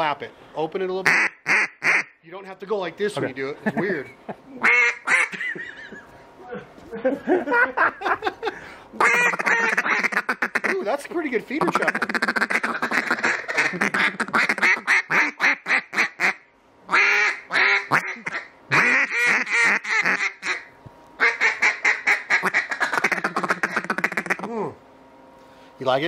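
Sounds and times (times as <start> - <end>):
duck call clucking: 1.0 - 2.2, 4.6 - 5.5, 9.0 - 10.8, 11.6 - 24.6
duck call quacks: 1.0 - 2.2, 4.6 - 5.4, 9.0 - 10.8, 11.6 - 24.5.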